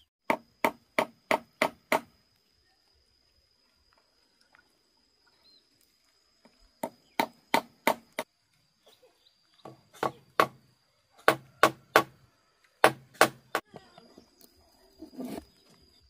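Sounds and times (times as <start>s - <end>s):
hammer driving nails into wood: 12.8s - 13.6s.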